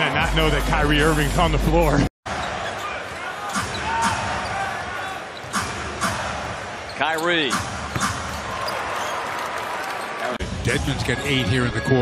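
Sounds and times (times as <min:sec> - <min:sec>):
arena crowd noise: 0:00.0 - 0:12.0
basketball bouncing on court: 0:07.6 - 0:08.8.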